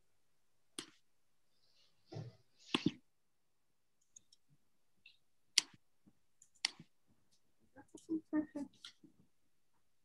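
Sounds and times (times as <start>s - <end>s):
computer mouse clicks: 6.4s - 6.9s.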